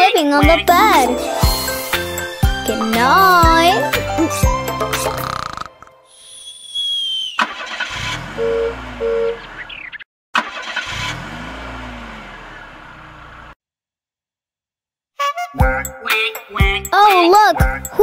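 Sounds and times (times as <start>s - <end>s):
high whistling tone: 6.1s - 7.5s
cartoon car engine revving: 7.4s - 13.6s.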